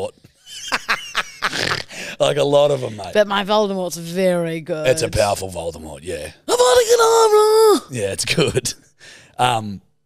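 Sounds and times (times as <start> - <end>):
man and woman laughing: 0.5 - 2.0.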